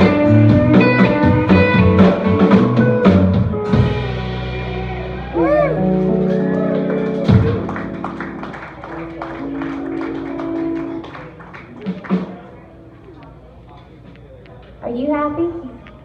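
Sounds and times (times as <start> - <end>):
live band playing: 0.0 - 13.2
audience clapping: 5.4 - 12.6.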